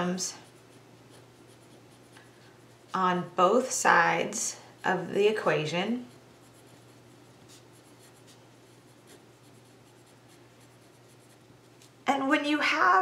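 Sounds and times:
pencil scratching on paper: 0:00.4 - 0:03.0, 0:05.9 - 0:11.8.

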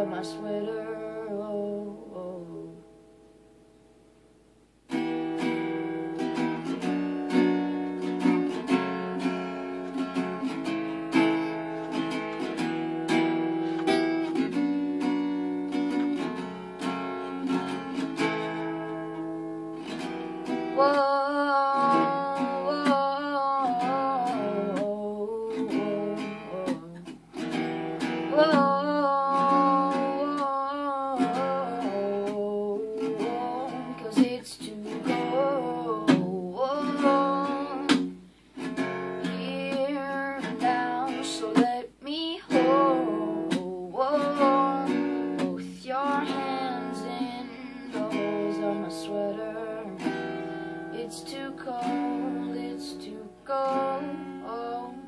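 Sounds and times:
boy singing wordless lines: 0:00.0 - 0:02.9, 0:19.9 - 0:27.4, 0:28.0 - 0:38.2, 0:39.1 - 0:55.0
acoustic guitar strummed: 0:00.0 - 0:04.1, 0:04.8 - 0:55.0.

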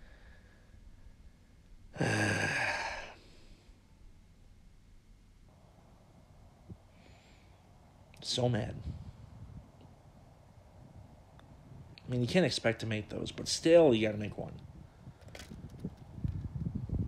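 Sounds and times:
man groaning and sighing: 0:01.9 - 0:03.2.

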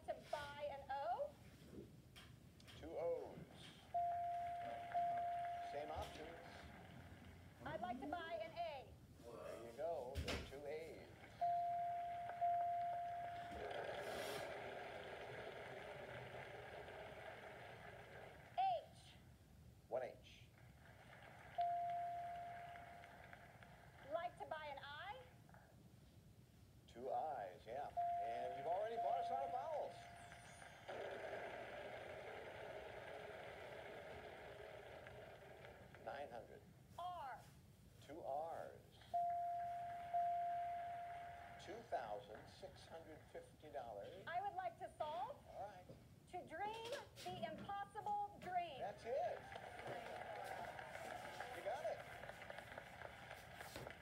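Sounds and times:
muffled game show audio from phone: 0:00.0 - 0:19.3, 0:19.9 - 0:25.7, 0:26.8 - 0:54.0
voices from phone speaker: 0:27.8 - 0:30.2.

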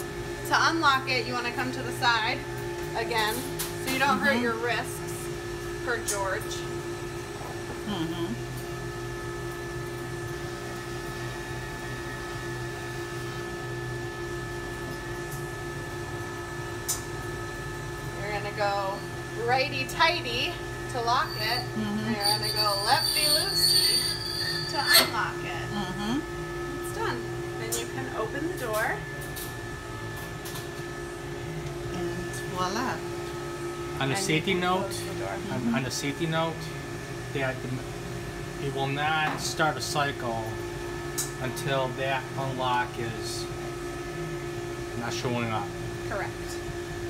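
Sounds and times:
steady machine hum: 0:00.0 - 0:47.0.

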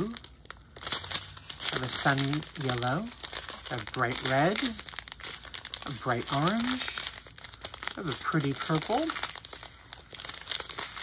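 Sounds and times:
plastic packets crinkling: 0:00.0 - 0:11.0.

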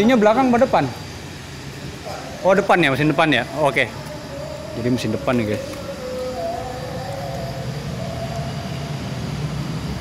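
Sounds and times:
motor running with whine: 0:00.0 - 0:10.0.

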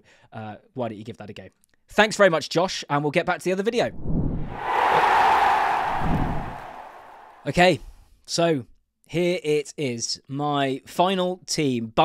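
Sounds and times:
whoosh: 0:04.1 - 0:07.4.

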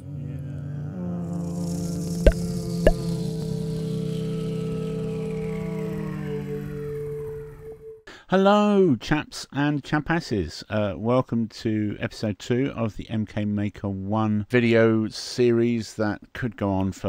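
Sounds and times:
droning chord intro music: 0:01.0 - 0:08.0.

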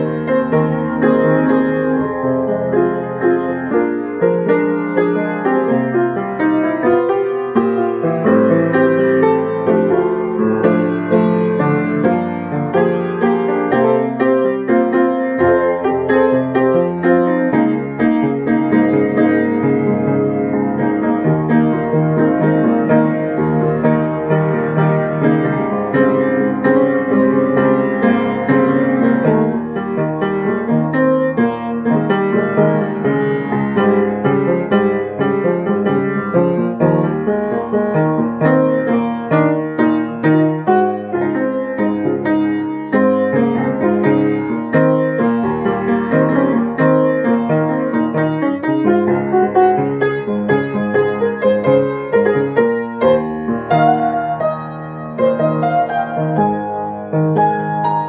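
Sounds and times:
solo piano improvisation: 0:00.0 - 0:58.0.

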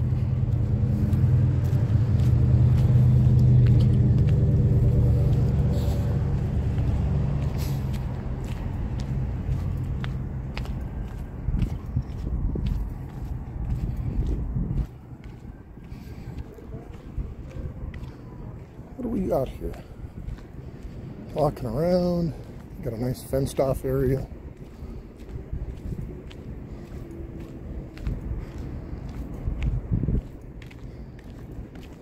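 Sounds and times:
vehicle engine rumbling: 0:00.0 - 0:32.0.

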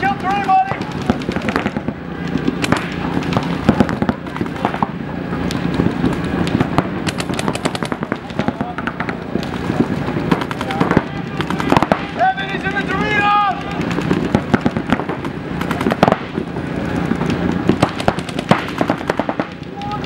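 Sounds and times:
paintball markers firing: 0:00.0 - 0:04.9, 0:05.5 - 0:12.2, 0:13.5 - 0:16.4, 0:17.2 - 0:20.0
person shouting: 0:12.2 - 0:13.6.

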